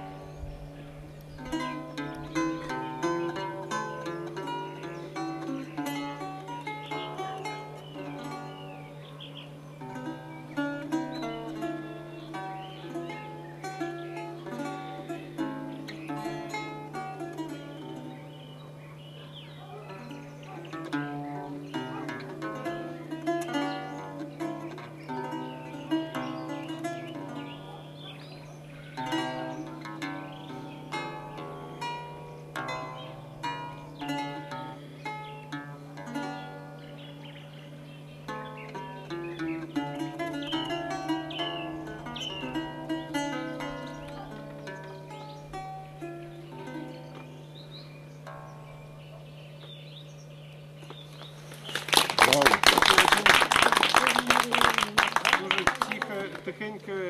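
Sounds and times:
steady low hum: 0.0 - 51.9
solo lute playing: 0.0 - 57.0.

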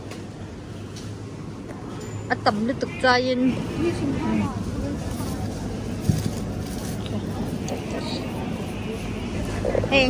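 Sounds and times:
faint voices: 2.4 - 10.0.

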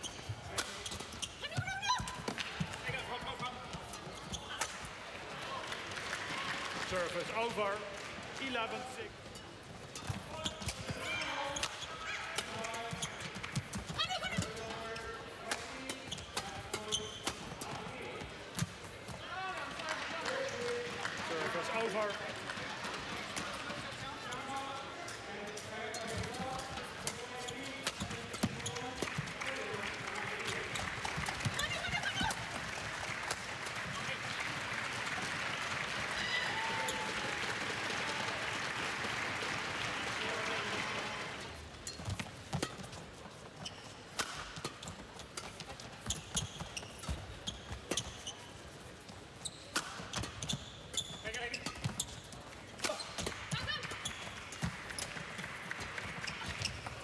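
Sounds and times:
crowd cheering and chattering: 28.2 - 41.7
rackets striking shuttlecock: 44.1 - 48.2, 49.7 - 50.5.

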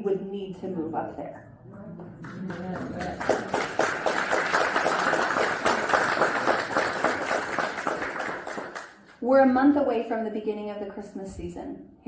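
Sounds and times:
congregation applauding: 2.2 - 9.2.

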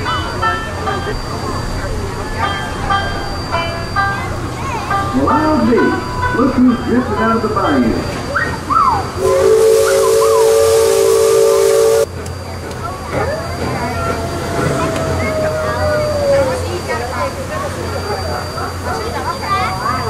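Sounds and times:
steam hissing: 0.0 - 20.0
steam whistle blast: 8.4 - 12.2.

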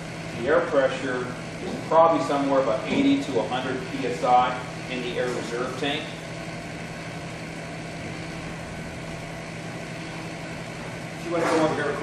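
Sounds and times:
low droning machine hum: 0.0 - 12.0.

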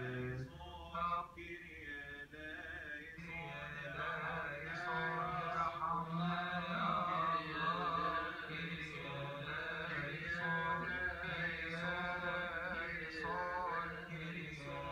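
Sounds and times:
liturgical chant through tv speaker: 0.0 - 14.9.

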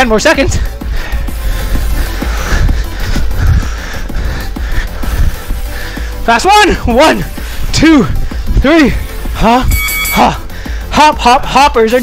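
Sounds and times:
electronic music with heavy bass: 0.0 - 12.0.

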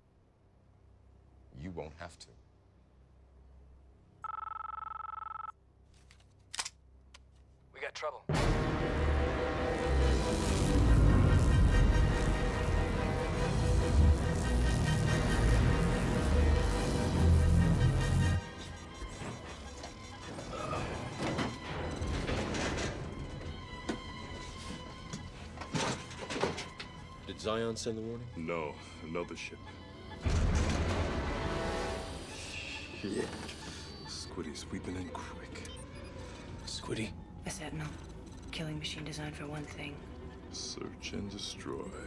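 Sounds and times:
mobile phone ringing: 4.2 - 5.6
background music: 8.3 - 42.0.

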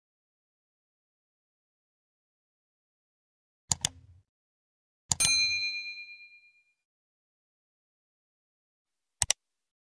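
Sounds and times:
mouse click: 3.7 - 4.1, 9.2 - 9.4
notification bell ding: 5.2 - 6.8.

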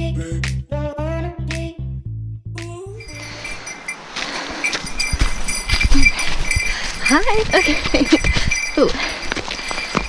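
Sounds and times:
footsteps crunching on snow: 3.0 - 10.0
camera and clothing rustles: 3.1 - 10.0.

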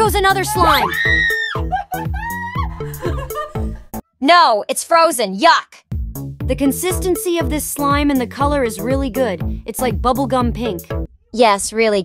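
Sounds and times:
background music: 0.0 - 4.0, 5.9 - 11.1
woman screaming: 0.2 - 2.9
woman crying out and laughing: 0.3 - 3.8.

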